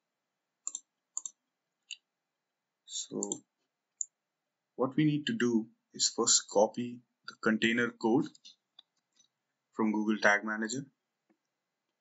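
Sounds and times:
computer mouse clicks: 0.6 - 2.0, 3.1 - 4.2.

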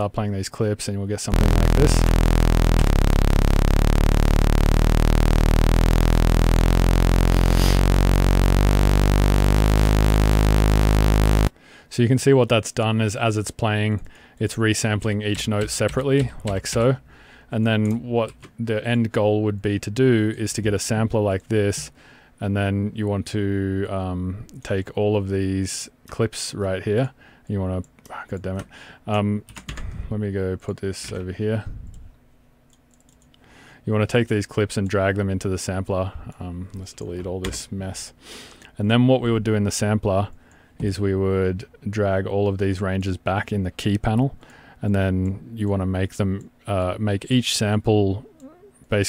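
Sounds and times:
man's voice: 1.3 - 5.9
buzzy low synthesizer note: 1.3 - 11.5
computer mouse clicks: 32.7 - 33.4.

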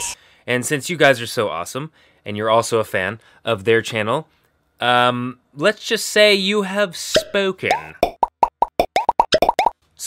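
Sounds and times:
cartoon pop sound effects: 7.2 - 9.8.

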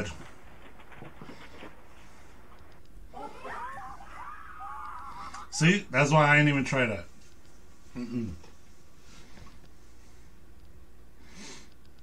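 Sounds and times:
high wavering cry: 3.1 - 5.6.

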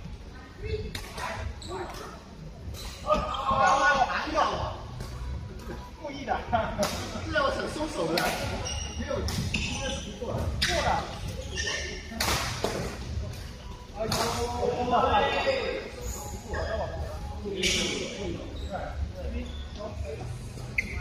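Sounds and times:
voices talking in echoing hall: 0.0 - 21.0.

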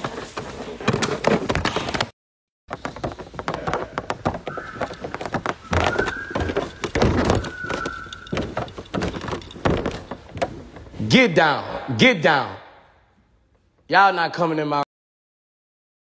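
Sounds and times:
knocks and clicks: 2.7 - 10.9
dogs whining: 4.4 - 9.5.

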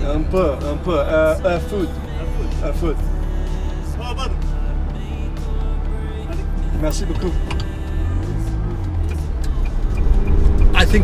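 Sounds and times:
car engine at low revs: 0.0 - 11.0.

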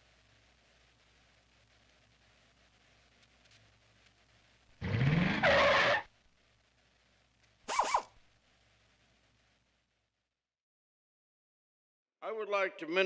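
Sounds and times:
tyre squeal: 4.8 - 6.1, 7.7 - 8.1.

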